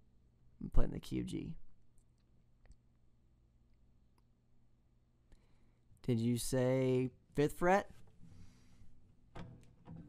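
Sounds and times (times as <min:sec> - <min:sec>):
acoustic guitar handling: 0:08.0 - 0:10.0.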